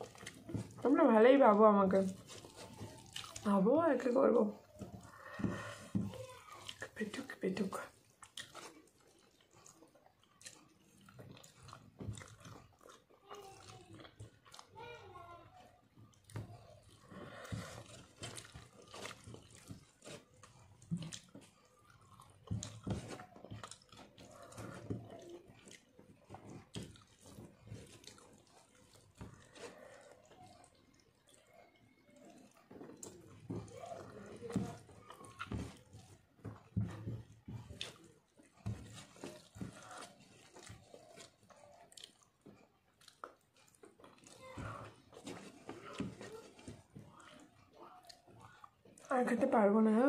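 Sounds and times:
chewing and mouth smacks: 0.0s - 1.0s, 1.9s - 49.5s
woman speaking: 0.8s - 2.2s, 3.4s - 4.7s, 6.8s - 8.0s, 49.0s - 50.0s
fingers mixing rice on metal plate: 15.5s - 49.1s.

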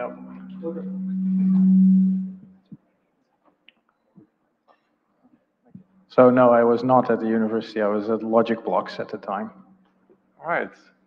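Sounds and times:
low feedback tone from speakers: 0.0s - 2.8s, 8.2s - 10.0s.

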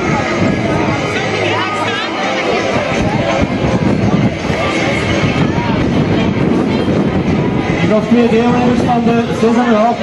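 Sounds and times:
faint voices of bystanders: 0.0s - 10.0s
loud rushing noise: 0.0s - 10.0s.

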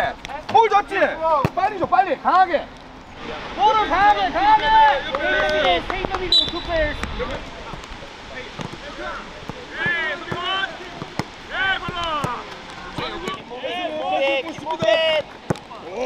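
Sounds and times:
players shouting calls: 0.0s - 16.0s
boots kicking football: 8.5s - 13.4s.

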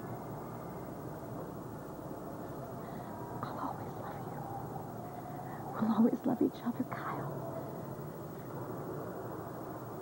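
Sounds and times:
low background noise: 0.0s - 10.0s
woman whispering: 3.4s - 4.4s, 5.6s - 7.4s.

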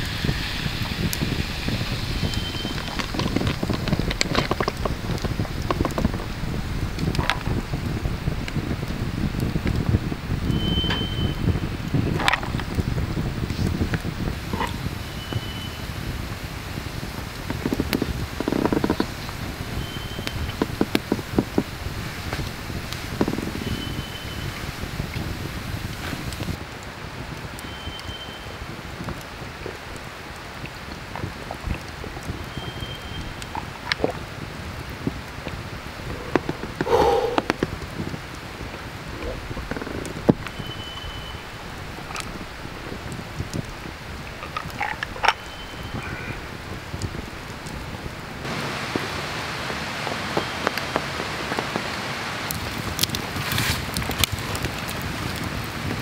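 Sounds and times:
steady hiss: 0.0s - 27.6s
campfire crackling: 0.0s - 56.0s.

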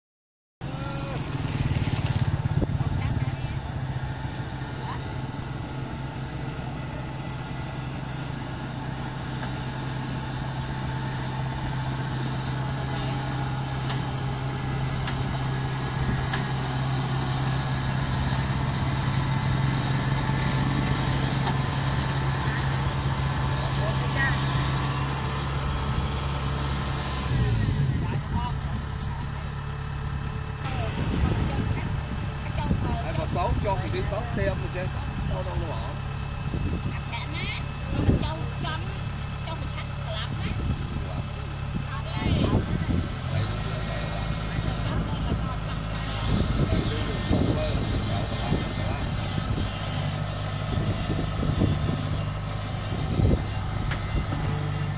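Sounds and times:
diesel engine running: 0.6s - 54.9s.

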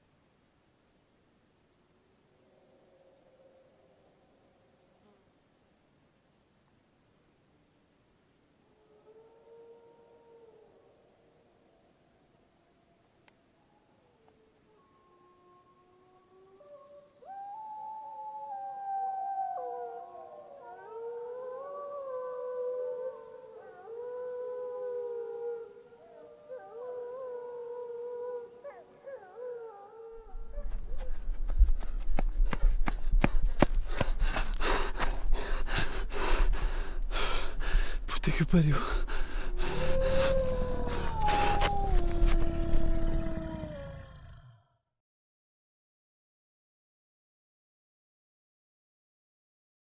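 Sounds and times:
chorus of howls: 8.6s - 31.1s, 39.0s - 44.6s
man breathing heavily: 30.8s - 42.0s
low rumble: 38.9s - 44.1s.

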